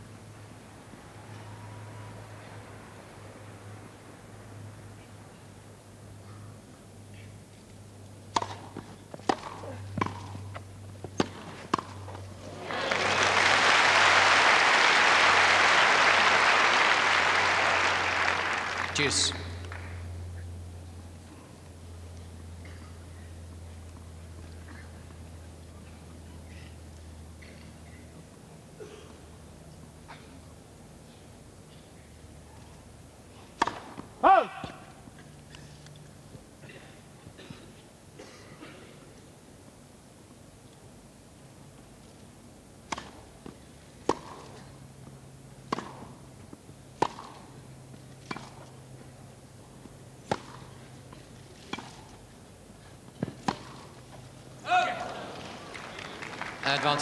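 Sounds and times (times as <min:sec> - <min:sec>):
tennis ball struck by rackets: 0:08.3 - 0:12.2, 0:33.6 - 0:34.9, 0:42.8 - 0:44.6, 0:45.6 - 0:49.0, 0:49.8 - 0:52.1, 0:53.2 - 0:54.2
crowd applause: 0:12.4 - 0:20.0, 0:54.7 - 0:57.0
person shouting line call: 0:34.2 - 0:34.8, 0:54.6 - 0:55.3.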